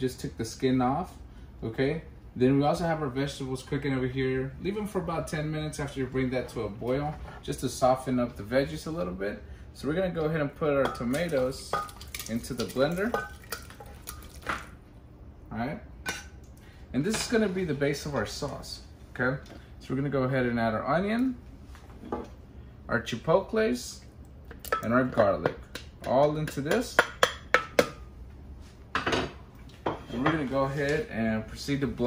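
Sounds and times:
wet drops: 11.8s - 14.7s.

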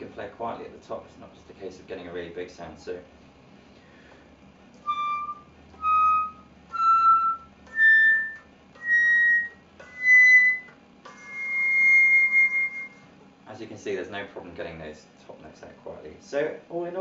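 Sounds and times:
flute playing high notes: 4.8s - 13.0s.

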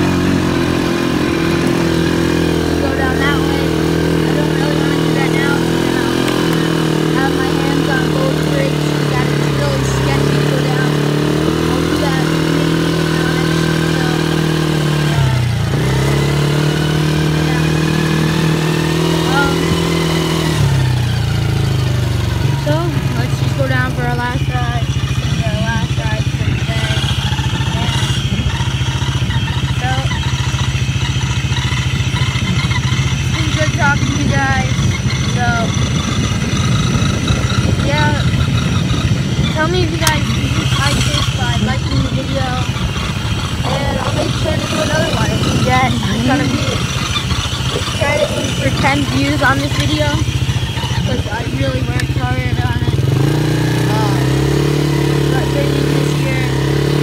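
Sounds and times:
quad engine running: 0.0s - 57.0s.

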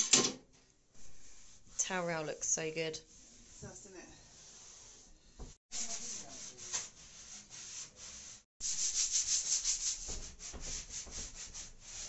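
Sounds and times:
scratchy rubbing strokes: 1.0s - 12.0s.

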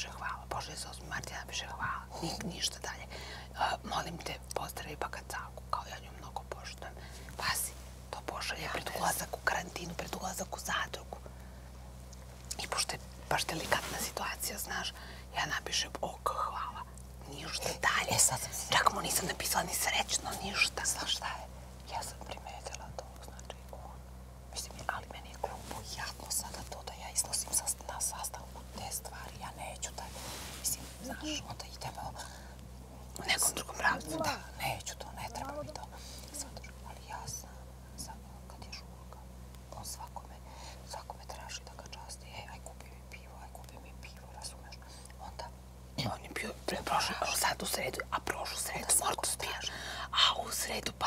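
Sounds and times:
women whispering: 0.0s - 11.2s, 12.5s - 32.3s, 33.1s - 51.0s
low hum: 0.0s - 51.0s.

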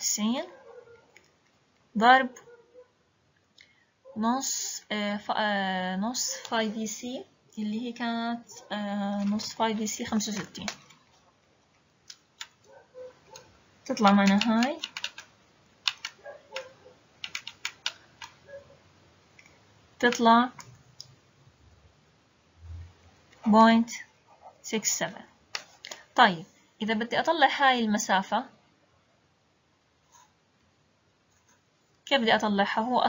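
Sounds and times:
calculator keys clicking: 13.3s - 18.4s.

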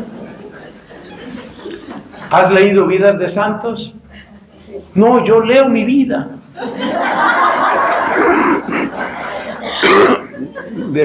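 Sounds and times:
audience laughing: 6.6s - 11.0s.

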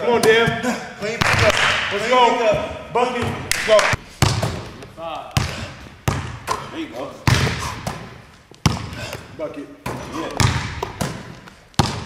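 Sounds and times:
basketball bouncing on hardwood: 4.2s - 4.8s, 5.4s - 6.4s, 7.3s - 8.9s, 9.9s - 12.0s.

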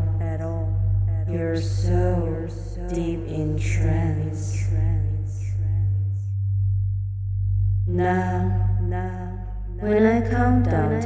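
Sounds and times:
woman speaking: 0.0s - 6.2s, 7.9s - 11.0s
low electronic hum: 0.0s - 11.0s.

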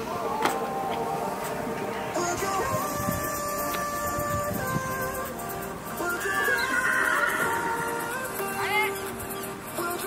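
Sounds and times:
background music: 0.0s - 10.0s
horse neighing: 6.2s - 8.1s.

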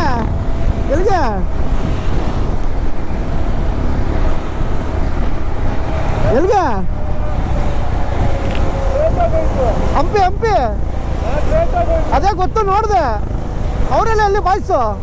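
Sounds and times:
motorcycle engine drone: 0.0s - 15.0s
wind rushing over microphone: 0.0s - 15.0s.

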